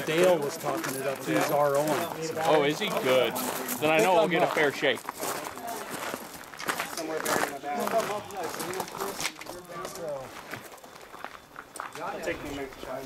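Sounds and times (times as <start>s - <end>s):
footsteps on gravel: 0.0s - 13.0s
people chattering: 0.0s - 13.0s.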